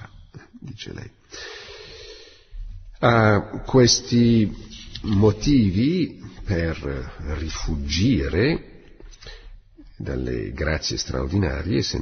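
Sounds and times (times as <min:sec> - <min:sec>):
man speaking: 0:00.0 - 0:01.3, 0:02.9 - 0:09.2, 0:09.8 - 0:12.0
man breathing in: 0:01.3 - 0:02.7, 0:09.2 - 0:09.6.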